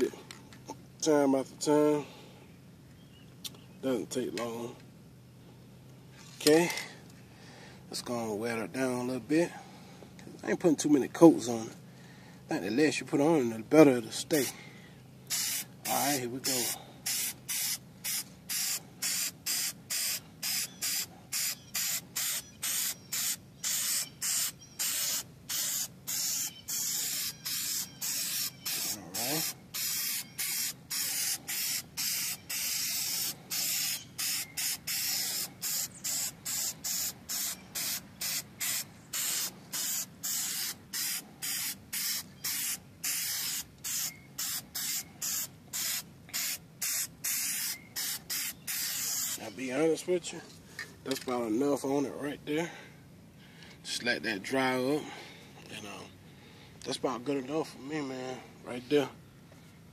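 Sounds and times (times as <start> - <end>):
spray paint can hissing in bursts: 15.3 - 49.4.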